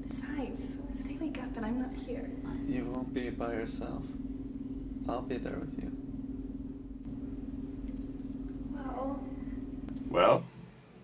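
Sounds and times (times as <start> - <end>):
low pulsing hum: 0.0 - 10.4.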